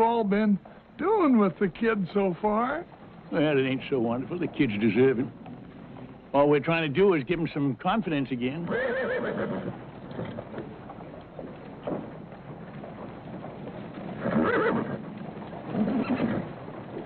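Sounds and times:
hooves clip-clopping: 0.0 - 17.0
horse whinnying: 8.6 - 10.6, 14.1 - 16.7.

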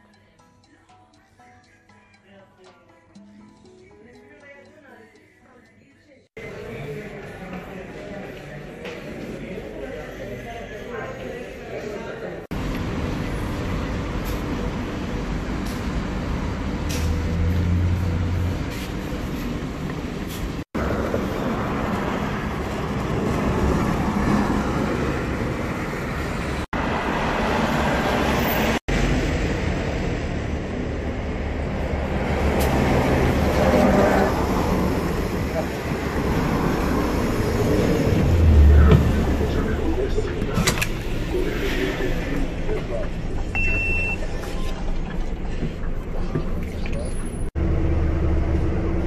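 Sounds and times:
people's voices: 4.1 - 12.5, 37.7 - 47.5
passing cars: 12.5 - 43.9
bus engine running: 12.5 - 49.0.

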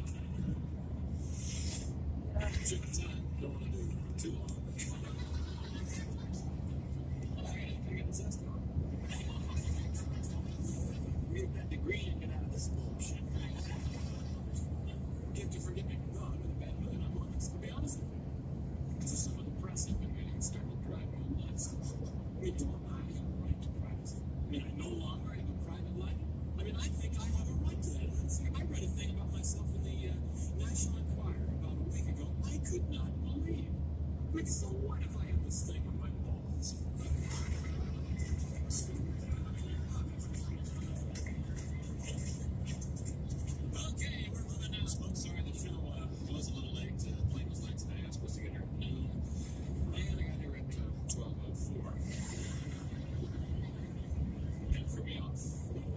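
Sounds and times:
car radio talk and music: 0.0 - 55.9
car road and engine rumble: 0.0 - 55.9.

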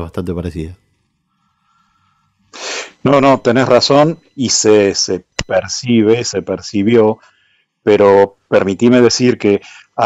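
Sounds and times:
sharp intake of breath: 1.4 - 3.0
person speaking: 2.6 - 7.2.

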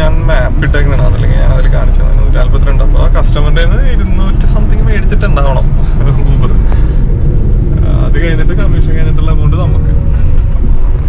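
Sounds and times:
man talking: 0.0 - 6.8, 7.7 - 10.1
car road and engine rumble: 0.0 - 11.0.

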